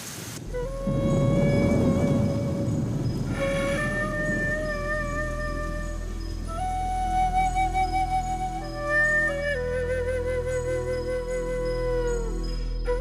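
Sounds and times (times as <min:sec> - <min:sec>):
heavy rain: 0:00.0 - 0:13.0
flute playing long notes: 0:00.4 - 0:13.0
low rumbling swell: 0:00.4 - 0:13.0.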